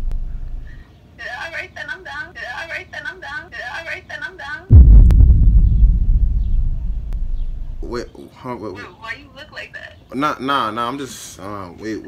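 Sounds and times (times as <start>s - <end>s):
deep bass boom: 4.7s - 8.1s.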